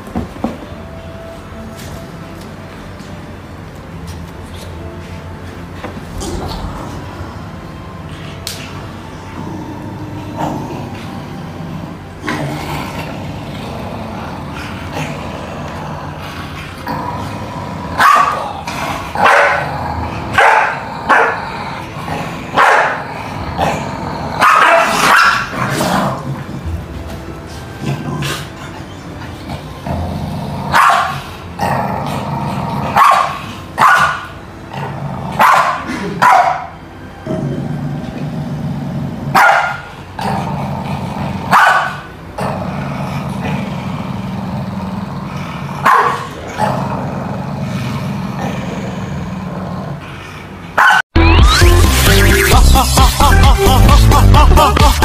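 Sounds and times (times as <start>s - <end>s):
dog barking: 18.0s - 18.5s, 19.2s - 19.7s, 20.4s - 21.4s, 22.6s - 23.0s, 24.4s - 25.5s, 30.7s - 31.2s, 33.0s - 34.3s, 35.4s - 36.7s, 39.3s - 39.9s, 41.5s - 42.1s, 45.8s - 46.3s, 50.8s - 51.0s.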